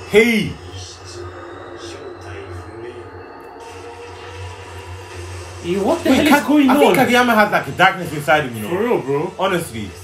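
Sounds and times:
low rumbling soundtrack drone: 0.0 - 10.0.

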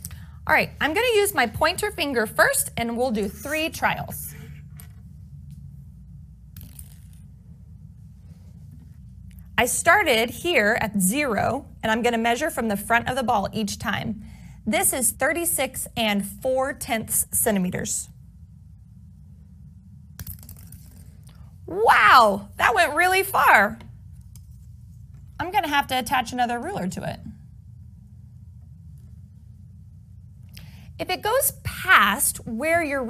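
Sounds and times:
low steady hum: 0.0 - 33.0.

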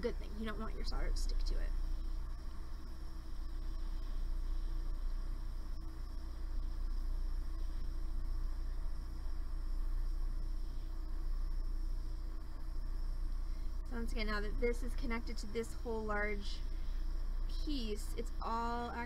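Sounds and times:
soldering torch flame hissing: 0.0 - 19.0.

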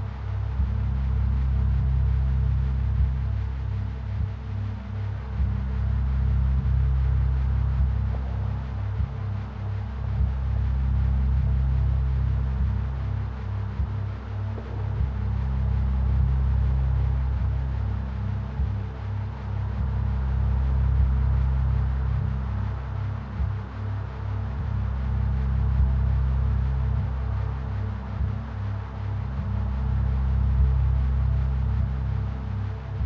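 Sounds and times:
ambient meditation drone: 0.0 - 33.0
low pulsing tone: 0.0 - 33.0.

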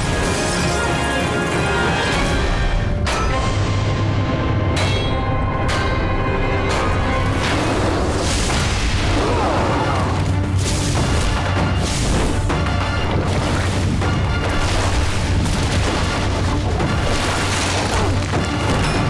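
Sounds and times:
dramatic film score: 0.0 - 19.0.

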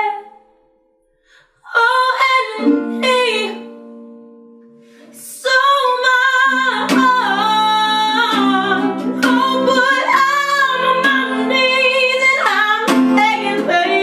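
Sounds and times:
woman singing slow melody: 1.6 - 3.8, 5.1 - 14.0
acoustic guitar strumming: 6.0 - 14.0.

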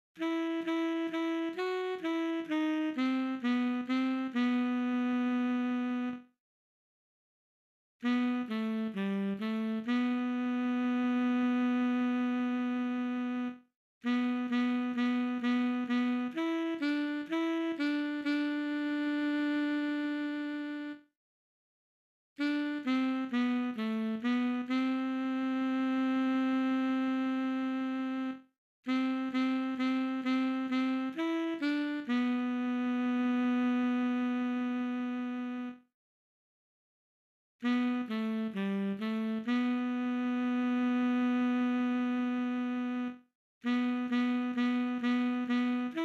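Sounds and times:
tenor saxophone long note: 0.2 - 6.3, 8.0 - 21.1, 22.4 - 35.8, 37.6 - 46.0.

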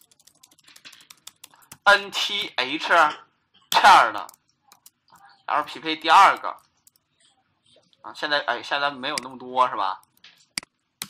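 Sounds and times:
man talking: 1.9 - 4.4, 5.5 - 6.6, 8.1 - 10.1.

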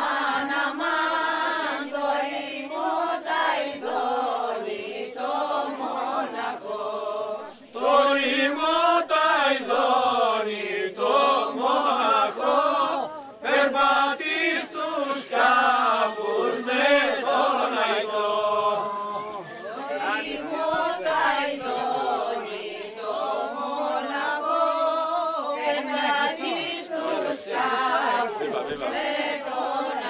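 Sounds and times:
group of men and women singing: 0.0 - 30.0.

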